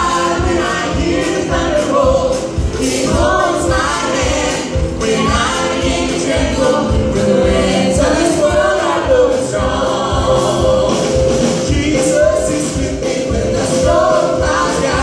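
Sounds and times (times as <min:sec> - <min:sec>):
group singing in harmony: 0:00.0 - 0:15.0
instrumental backing with beat: 0:00.0 - 0:15.0.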